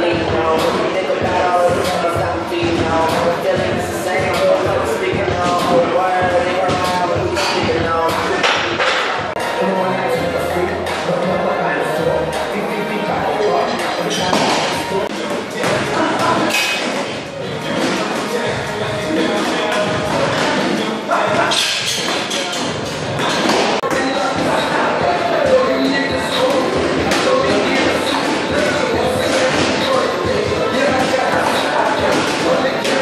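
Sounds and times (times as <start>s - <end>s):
chatter of many voices: 0.0s - 33.0s
people talking: 0.0s - 33.0s.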